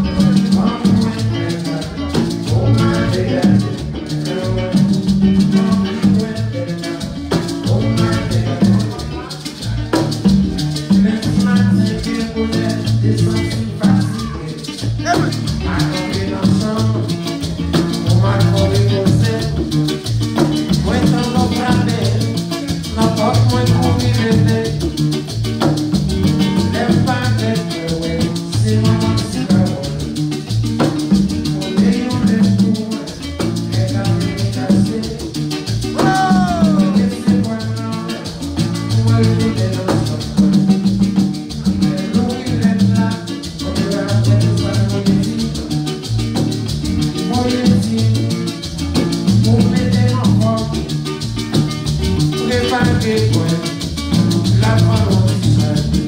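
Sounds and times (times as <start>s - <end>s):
man singing: 0.0s - 25.2s, 26.4s - 30.3s, 31.2s - 51.2s, 52.3s - 56.0s
acoustic guitar strummed: 0.0s - 56.0s
maracas shaking: 0.0s - 56.0s
rhythmic bass line: 0.0s - 56.0s.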